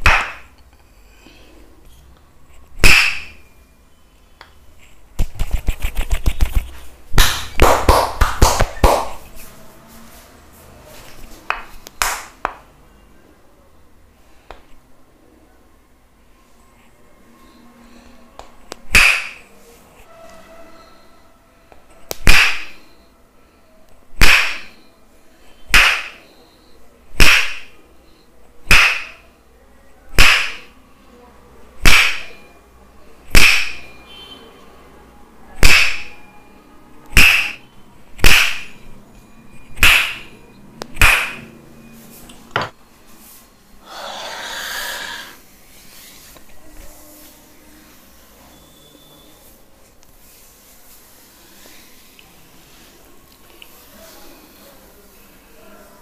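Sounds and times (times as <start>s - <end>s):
wooden mallet striking stick: 28.7s - 29.2s, 35.6s - 36.1s, 37.2s - 37.6s, 38.2s - 38.8s, 39.8s - 40.3s, 41.0s - 41.4s.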